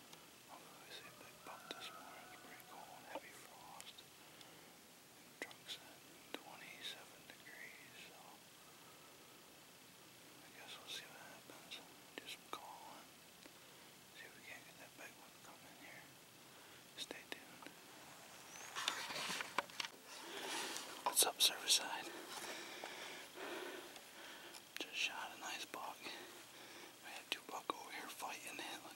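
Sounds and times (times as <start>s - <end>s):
man whispering: 0.4s - 4.0s, 5.4s - 8.4s, 10.4s - 13.1s, 14.1s - 16.1s, 16.9s - 17.9s, 20.1s - 28.9s.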